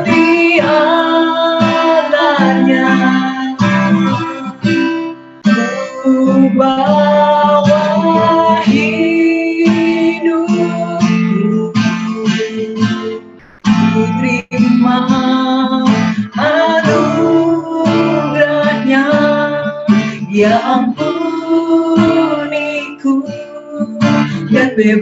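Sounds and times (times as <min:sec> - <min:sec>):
women singing: 0:00.0 - 0:04.7, 0:05.5 - 0:25.0
strummed acoustic guitar: 0:00.0 - 0:25.0.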